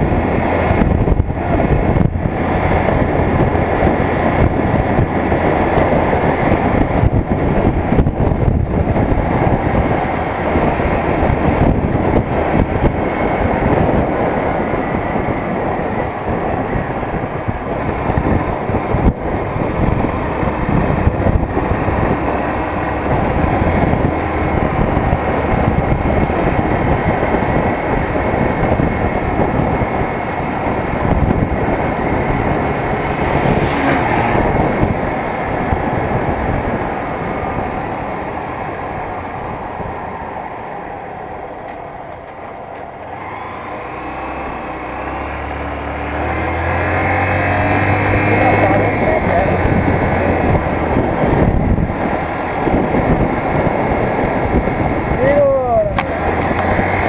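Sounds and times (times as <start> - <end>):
motorcycle engine accelerating: 0.0 - 57.0
wind on microphone: 0.0 - 57.0.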